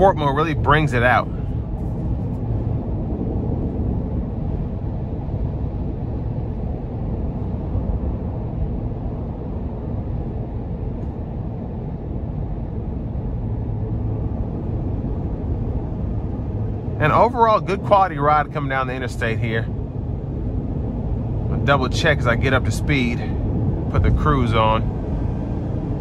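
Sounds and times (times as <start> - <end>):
road and tyre noise: 0.0 - 26.0
car engine running: 10.8 - 26.0.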